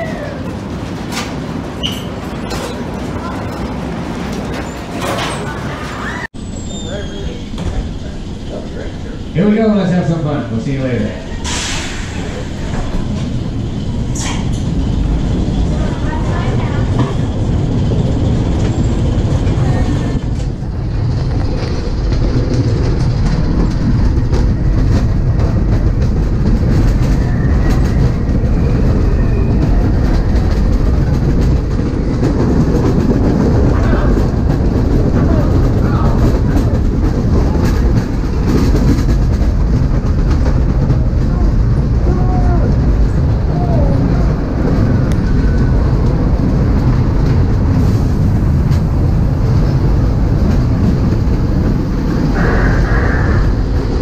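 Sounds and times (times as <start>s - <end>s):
ride car rumbling on track: 0.0s - 54.0s
wheels rattling: 0.0s - 54.0s.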